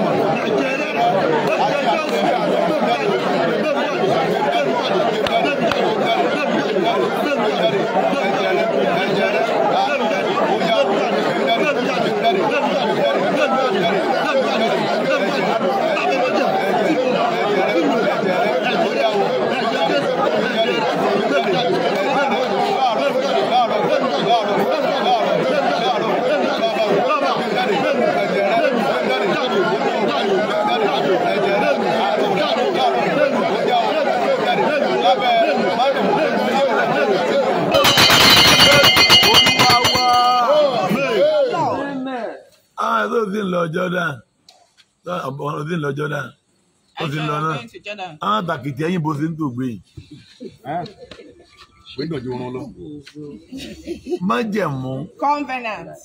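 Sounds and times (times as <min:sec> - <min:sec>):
many voices praying aloud: 0:00.0 - 0:56.0.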